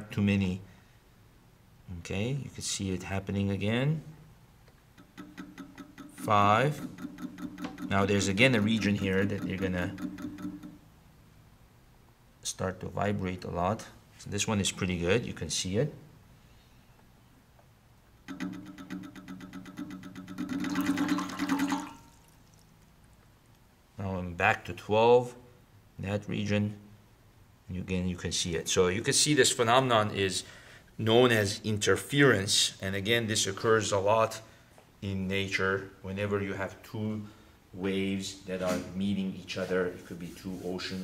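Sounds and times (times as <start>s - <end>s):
faint steady hum: 0.0s - 41.0s
wave generator ticking: 5.0s - 10.8s, 18.2s - 21.8s.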